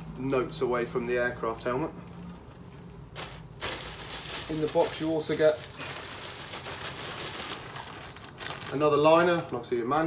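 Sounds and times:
plastic packaging crinkling: 3.1s - 10.0s.

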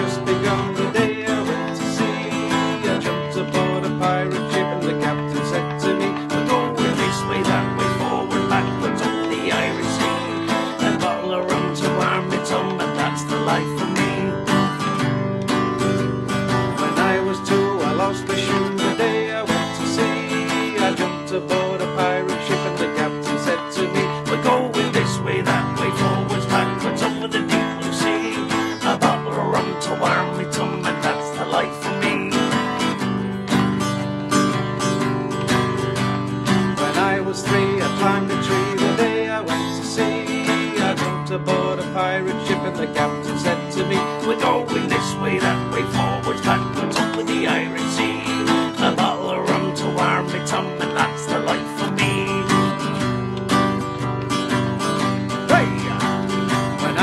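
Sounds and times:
man singing: 0.0s - 35.4s, 36.4s - 57.0s
acoustic guitar strumming: 0.0s - 57.0s.

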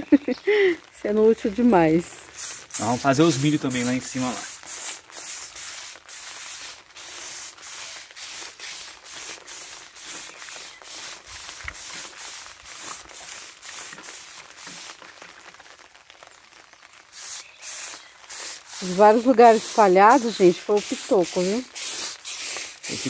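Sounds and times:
pressure sprayer hissing: 2.1s - 15.0s, 17.1s - 23.0s.

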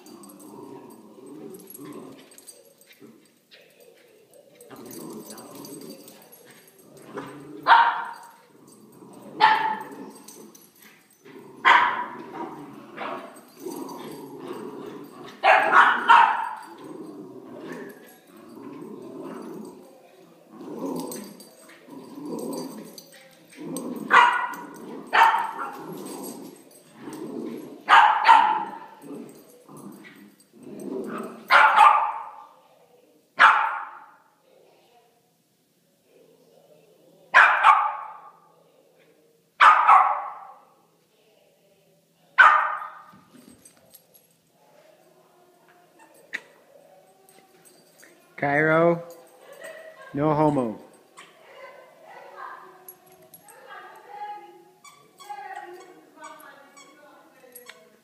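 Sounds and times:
puppies barking: 7.6s - 8.4s, 9.4s - 10.1s, 11.6s - 12.4s, 15.4s - 16.8s, 24.0s - 26.5s.

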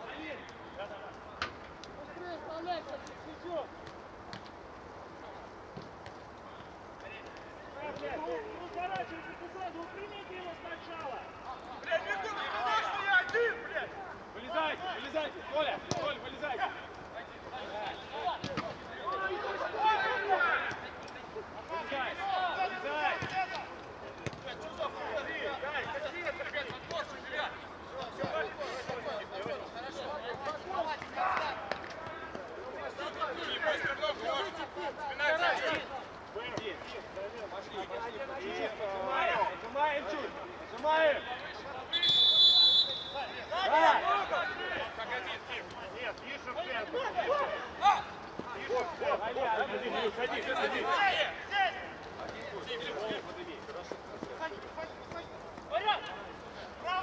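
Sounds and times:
players shouting: 6.5s - 57.0s.

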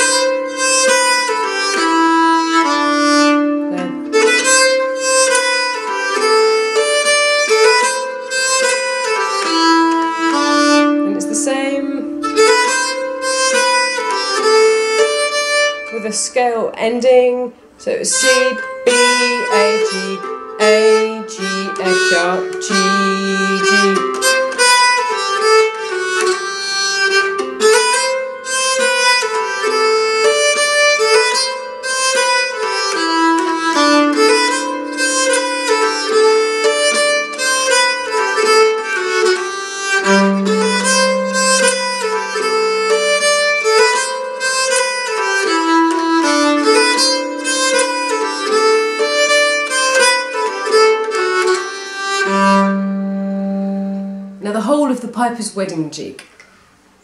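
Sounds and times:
bowed keyed fiddle jig: 0.0s - 54.5s.

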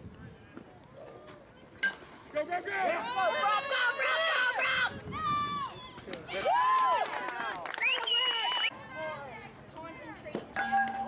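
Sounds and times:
spectators shouting and cheering: 2.7s - 9.1s.

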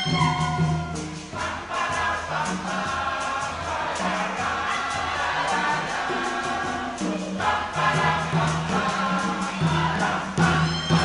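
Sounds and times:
church choir singing: 0.0s - 11.0s.

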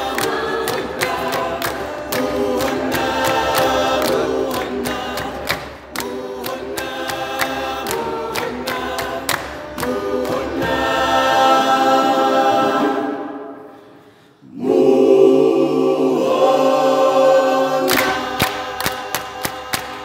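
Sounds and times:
hand claps: 0.0s - 10.9s, 17.9s - 20.0s
a cappella choir singing: 0.0s - 20.0s.

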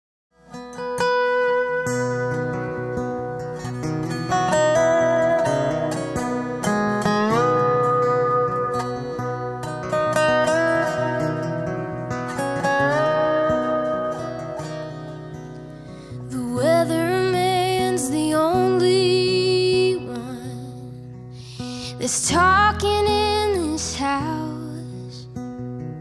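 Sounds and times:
low plucked-string accompaniment: 0.4s - 26.0s
dobro plucked sliding notes: 0.5s - 26.0s.

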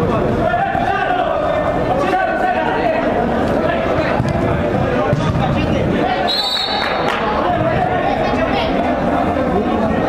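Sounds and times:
people shouting and talking: 0.0s - 10.0s
ball kicked and bouncing: 4.1s - 5.6s.

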